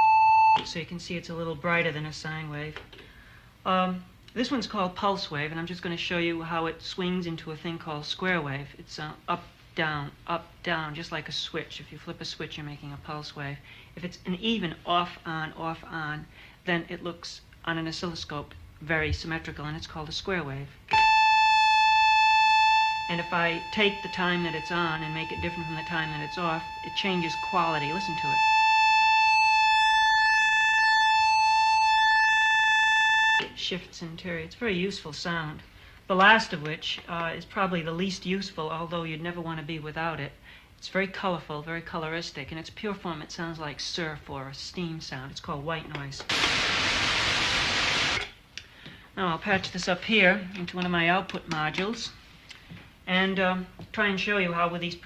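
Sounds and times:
synthesizer square wave tone: 0:20.9 - 0:33.5, 0:46.3 - 0:48.2
synthesiser white noise hiss: 0:46.3 - 0:48.5.

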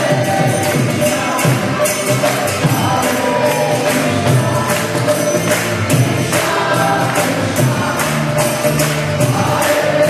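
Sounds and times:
group singing a devotional chant: 0:00.0 - 0:10.0.

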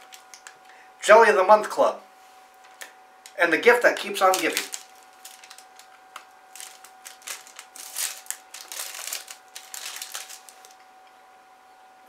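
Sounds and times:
chocolate bar crunching: 0:03.3 - 0:10.8.

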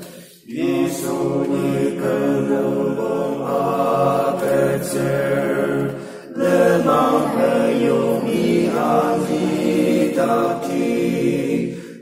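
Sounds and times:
unaccompanied hymn singing: 0:00.0 - 0:12.0.

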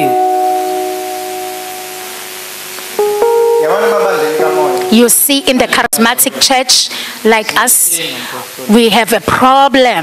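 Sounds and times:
held musical chord: 0:00.0 - 0:05.9
steady hiss: 0:00.0 - 0:09.6.

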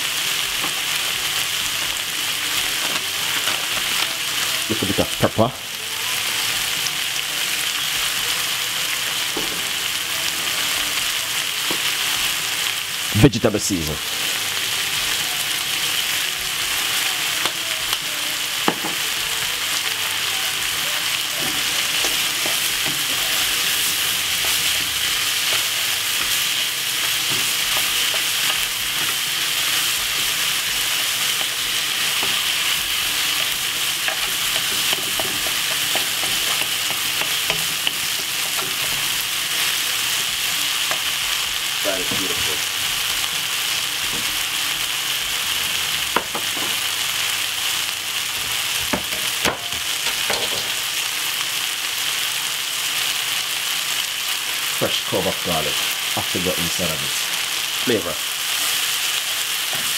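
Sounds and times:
vegetables sizzling in a wok: 0:00.0 - 0:59.9
spoon tapping pan: 0:33.4 - 0:39.0.

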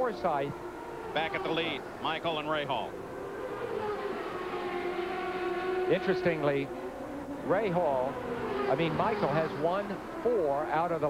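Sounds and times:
race car engine passing by: 0:00.0 - 0:11.0.

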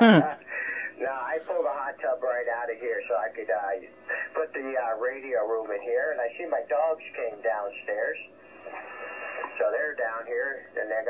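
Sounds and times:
man talking over radio: 0:08.9 - 0:11.0.

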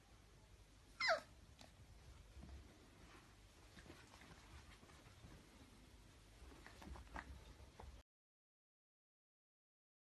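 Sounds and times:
puppy yelping: 0:01.0 - 0:01.3.

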